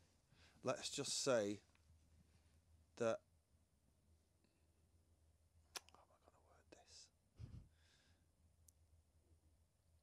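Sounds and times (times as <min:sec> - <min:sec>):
faint breathy hiss: 0:00.0 - 0:01.6, 0:05.8 - 0:08.3.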